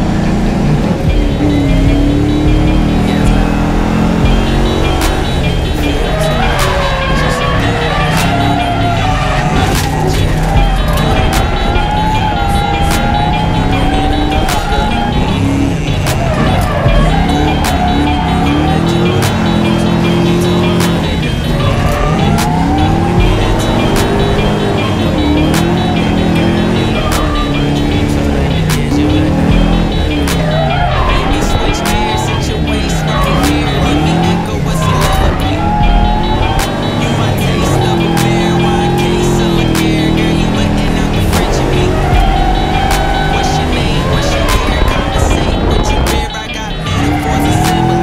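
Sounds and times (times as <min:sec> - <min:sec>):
car engine revving: 0:00.0 - 0:48.0
music: 0:00.0 - 0:48.0
tyres squealing: 0:00.0 - 0:48.0.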